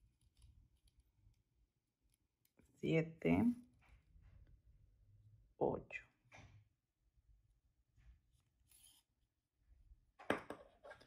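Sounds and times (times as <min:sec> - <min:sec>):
needle and thread through ribbon: 0:00.0 - 0:02.8, 0:08.0 - 0:09.3.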